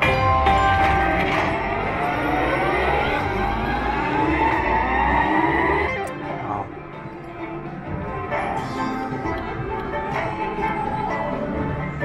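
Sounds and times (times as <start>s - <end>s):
slot machine rising electronic tone: 0.0s - 6.1s.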